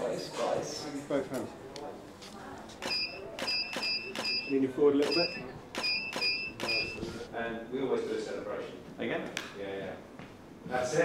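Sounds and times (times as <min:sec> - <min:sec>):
camera shutter firing: 0:02.8 - 0:07.0
short high flash beep: 0:02.8 - 0:07.0.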